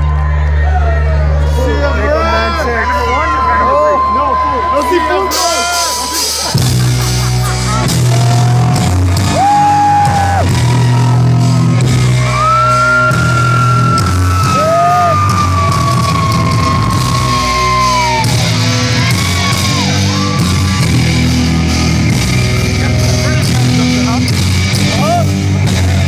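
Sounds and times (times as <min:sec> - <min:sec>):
upright bass low notes: 0:03.4 - 0:26.0
live rock band playing loud: 0:05.2 - 0:26.0.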